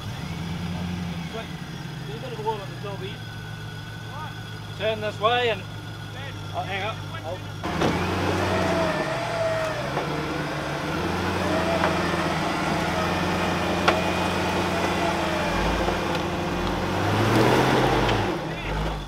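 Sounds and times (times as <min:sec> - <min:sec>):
truck engine revving: 0:00.0 - 0:19.0.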